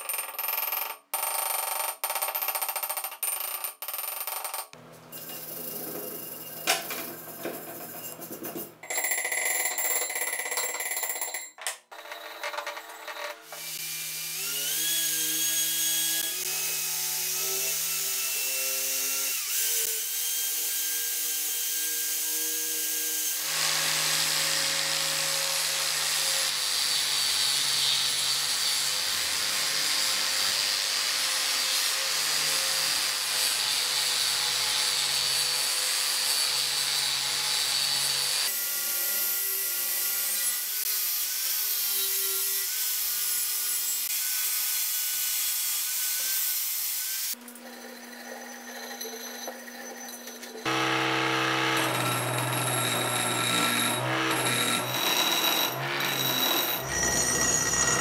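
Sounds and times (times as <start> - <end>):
angle grinder grinding steel: 45.4 - 58.0.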